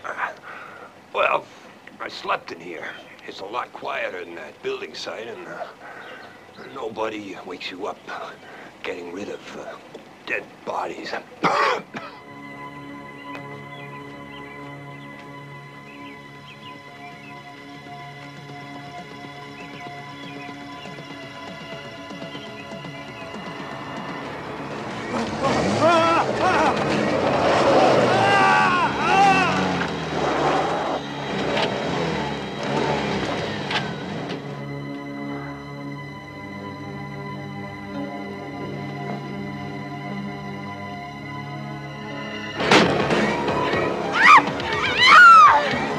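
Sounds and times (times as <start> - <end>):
man gasping: 0.2 - 1.0
film score music chord: 11.3 - 44.1
person screaming: 25.4 - 26.8, 27.7 - 29.8, 44.1 - 45.7.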